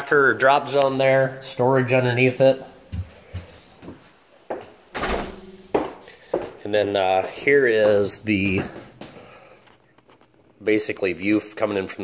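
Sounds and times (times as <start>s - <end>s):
knocks indoors: 4.9s - 6.5s.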